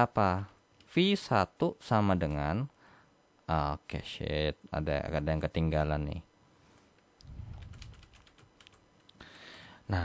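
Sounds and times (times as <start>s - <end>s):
keyboard keys clicking: 7.5s - 9.1s.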